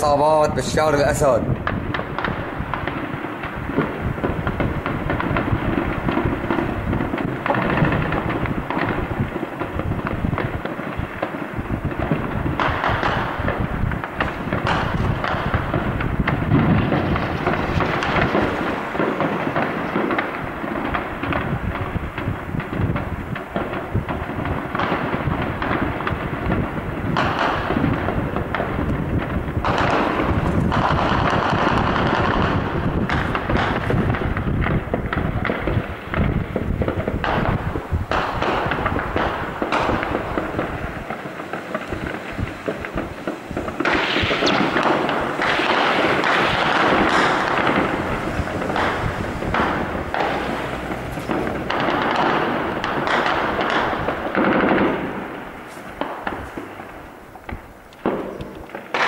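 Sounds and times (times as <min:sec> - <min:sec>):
heavy sustained gunfire: 0:00.0 - 0:59.0
rumbling undertone: 0:46.9 - 0:53.0.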